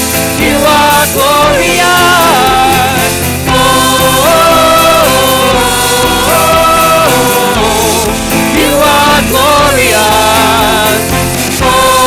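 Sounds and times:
acoustic guitar: 0:00.0 - 0:12.0
voices singing together: 0:00.0 - 0:12.0.

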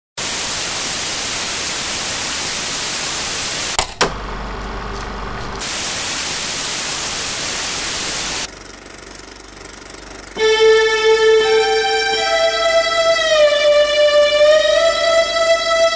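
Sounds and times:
television static hiss: 0:00.2 - 0:08.5.

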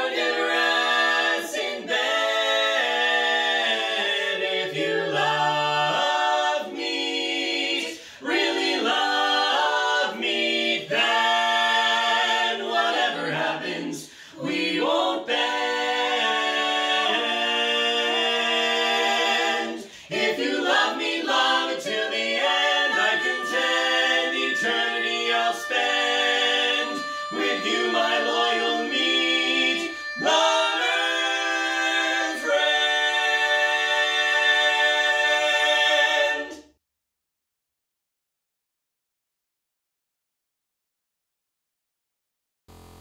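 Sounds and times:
a cappella quartet singing: 0:00.0 - 0:36.7.

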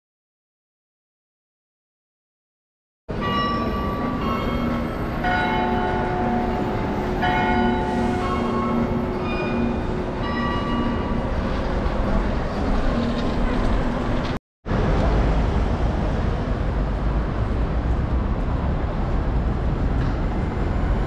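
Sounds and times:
bells ringing: 0:03.1 - 0:12.5
street traffic rumble: 0:03.1 - 0:21.0.

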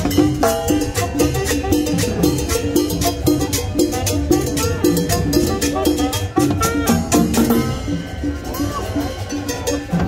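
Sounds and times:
cowbell beat: 0:00.0 - 0:10.0
latin dance band playing: 0:00.0 - 0:10.0.

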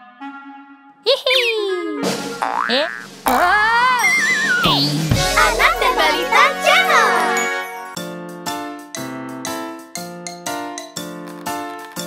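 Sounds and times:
cartoon springy boing: 0:02.4 - 0:04.8.

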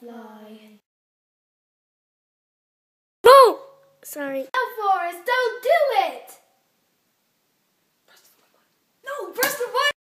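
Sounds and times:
wordless vocal cry: 0:03.2 - 0:03.8.

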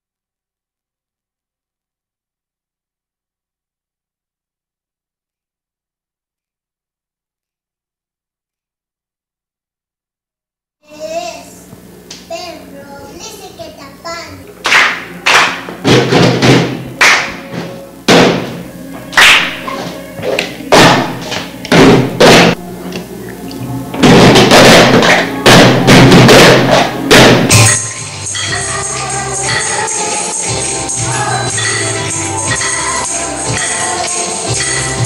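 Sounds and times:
hands clapping rhythmically: 0:14.6 - 0:18.3, 0:19.1 - 0:19.7, 0:24.2 - 0:27.7.

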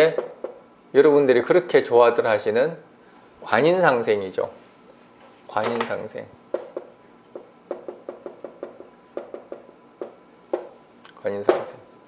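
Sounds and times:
marker tapping on whiteboard: 0:00.0 - 0:00.6, 0:06.5 - 0:10.8.

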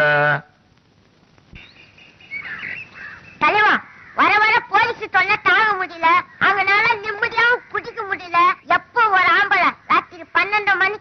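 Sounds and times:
birds chirping faintly: 0:00.7 - 0:11.0.

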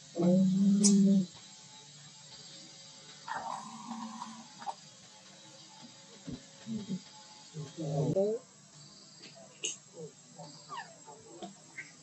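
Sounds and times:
baby monkey squeaking: 0:10.6 - 0:12.0.

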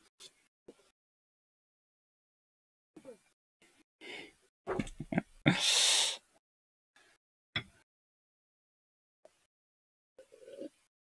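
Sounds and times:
man laughing: 0:04.8 - 0:05.6.

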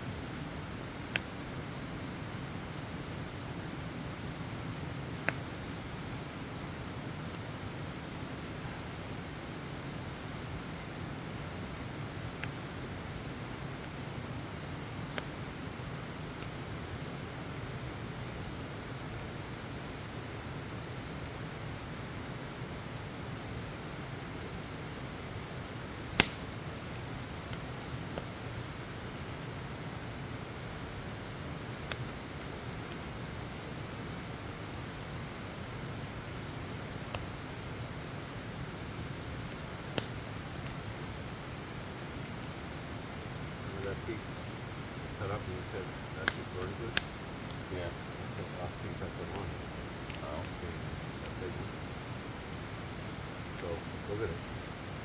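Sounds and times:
burning logs popping and cracking: 0:00.1 - 0:04.3, 0:05.0 - 0:10.2, 0:10.9 - 0:55.0
wood fire rushing: 0:00.1 - 0:55.0.

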